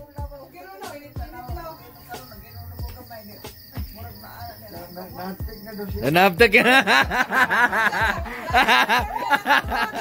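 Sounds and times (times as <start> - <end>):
crickets chirping: 0.0 - 10.0
faint voices: 0.0 - 10.0.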